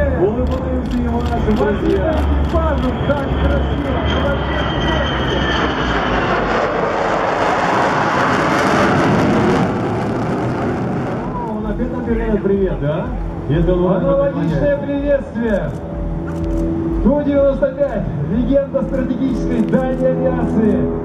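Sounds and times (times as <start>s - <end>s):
jet engine whine: 0.0s - 21.0s
jet rush of aircraft passing: 0.0s - 21.0s.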